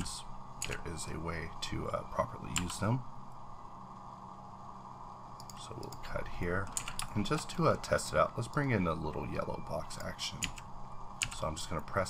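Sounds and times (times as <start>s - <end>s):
faint low hum with hiss: 0.0s - 12.0s.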